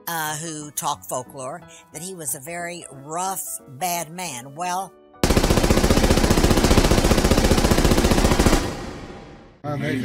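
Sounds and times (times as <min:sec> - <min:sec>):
automatic gunfire: 0:05.2 - 0:09.3.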